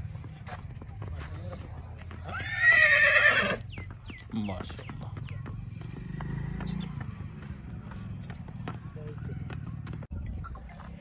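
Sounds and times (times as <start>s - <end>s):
hoof steps on dirt path: 0.0s - 11.0s
horse whinnying: 2.2s - 3.6s.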